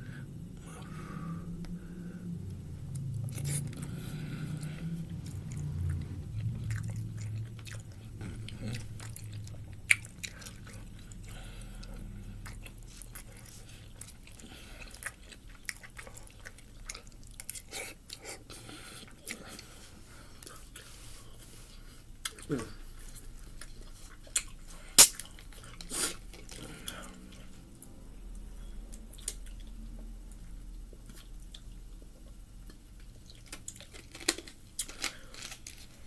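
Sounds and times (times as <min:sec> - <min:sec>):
person chewing food: 0:00.6 - 0:36.0.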